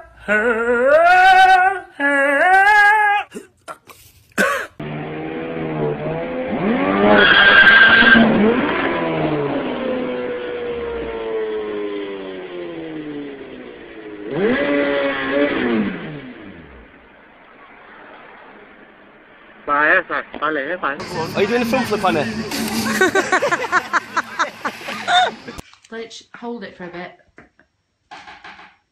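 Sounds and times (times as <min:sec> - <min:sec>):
motorcycle engine revving: 0:04.8 - 0:18.9, 0:21.0 - 0:25.6
tyre skid squeal: 0:06.8 - 0:08.6.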